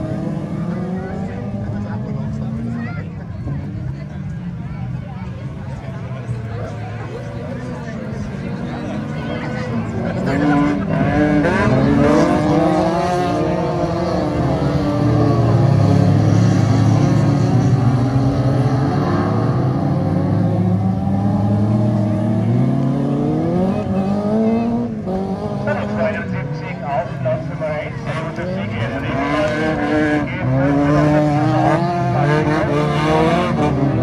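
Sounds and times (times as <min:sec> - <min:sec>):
race car engines revving past: 0:00.0 - 0:34.0.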